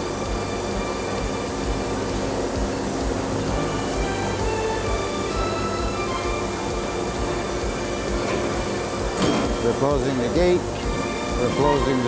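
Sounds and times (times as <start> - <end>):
industrial machinery rumbling: 0.0 - 12.0.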